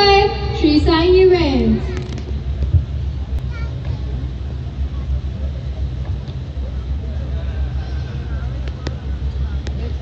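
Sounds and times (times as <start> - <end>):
faint voices: 0.0 - 10.0
low bass rumble from speakers: 0.0 - 10.0.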